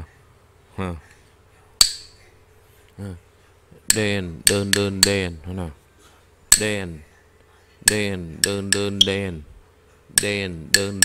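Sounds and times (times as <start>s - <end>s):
wooden clapper struck with stick: 1.8s - 2.2s, 3.9s - 5.2s, 6.5s - 6.7s, 7.9s - 9.2s, 10.2s - 11.0s.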